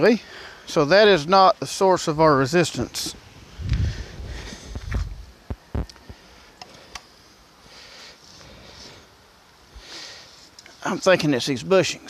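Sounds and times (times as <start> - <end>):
footsteps on gravel: 3.6 - 5.3.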